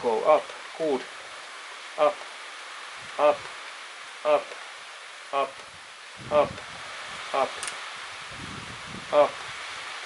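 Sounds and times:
steady background hiss: 0.0 - 10.0
person saying a word: 3.1 - 3.5, 5.4 - 5.6, 6.2 - 6.6, 7.3 - 7.7.

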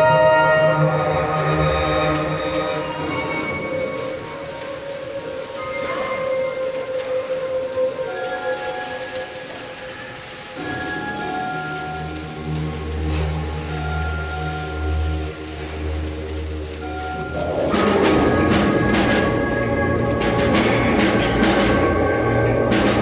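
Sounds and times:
concert band playing sustained notes: 0.0 - 23.0
low band notes: 12.0 - 23.0.

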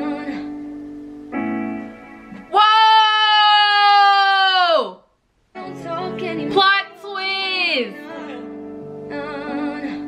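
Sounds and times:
woman squealing: 2.5 - 5.0.

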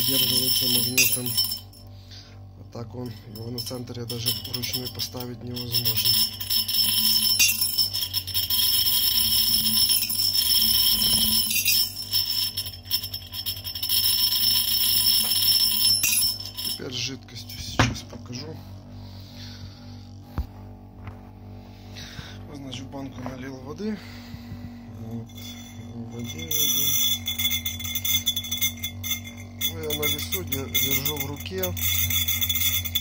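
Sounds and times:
nail rattling in glass jar: 0.0 - 1.9, 3.1 - 18.1, 25.0 - 33.0.

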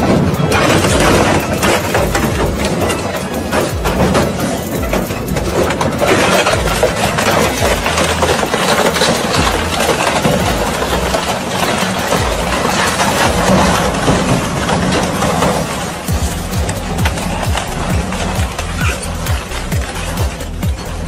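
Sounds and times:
metal cracking and crunching: 0.0 - 21.0
shredder machine drone: 0.0 - 21.0.

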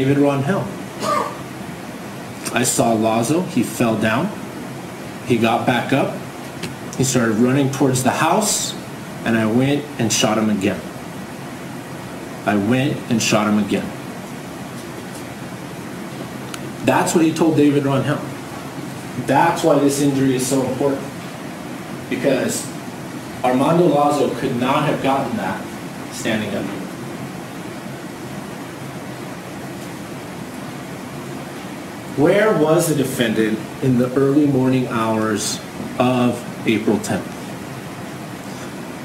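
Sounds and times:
steady recording hiss: 0.0 - 39.0.

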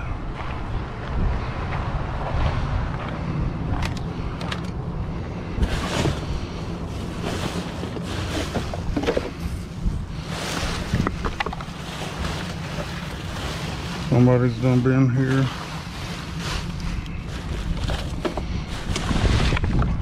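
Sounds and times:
wind rumble on microphone: 0.0 - 20.0
trash bags and cardboard rustling: 5.6 - 20.0.

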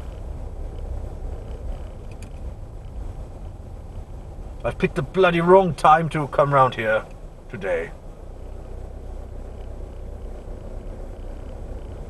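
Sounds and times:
faint ticks: 0.0 - 4.7, 9.4 - 12.0
car engine and tyres rumbling: 0.0 - 12.0.

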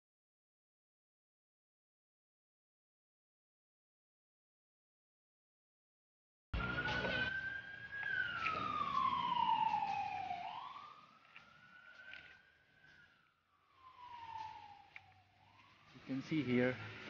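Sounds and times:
siren wailing: 6.6 - 17.0.

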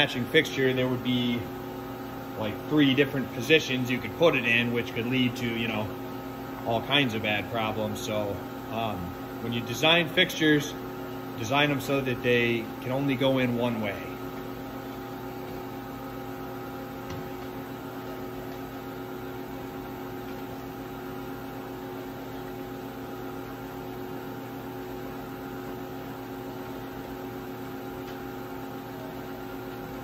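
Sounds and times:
machining centre electrical hum: 0.0 - 30.0.

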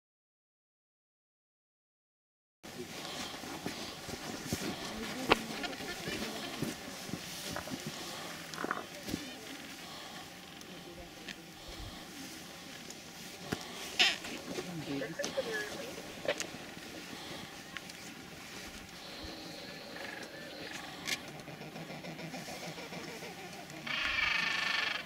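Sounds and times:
penguins calling: 3.0 - 10.4, 13.4 - 17.7, 19.0 - 25.0.

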